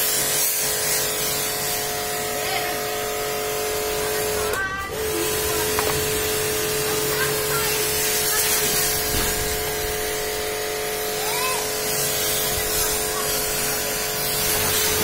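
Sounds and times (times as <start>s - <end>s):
pressure washer whine: 0.0s - 15.0s
water jet hissing on car: 0.0s - 15.0s.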